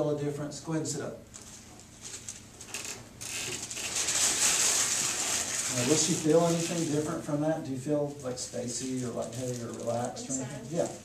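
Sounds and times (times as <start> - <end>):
clothing and table rustling: 1.3 - 7.3.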